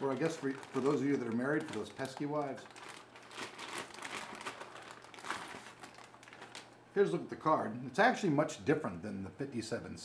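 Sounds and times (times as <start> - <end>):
plastic bag crinkling: 0.0 - 6.8.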